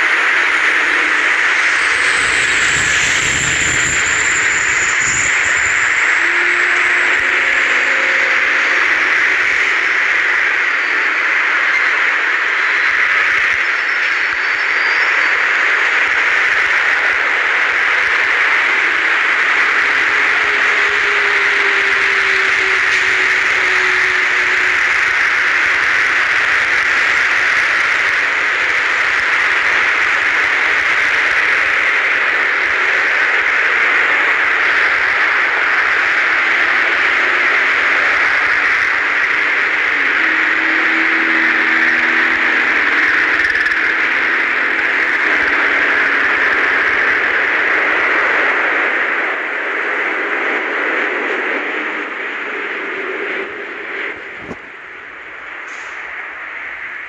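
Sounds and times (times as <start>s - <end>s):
faint tones: 0.0s - 11.2s, 18.7s - 26.8s, 34.9s - 46.8s
loud static hiss: 0.0s - 57.0s.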